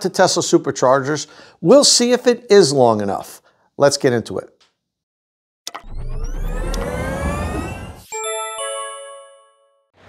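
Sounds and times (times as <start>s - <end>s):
rising vehicle whine: 5.7s - 8.3s
low rumble: 5.9s - 8.1s.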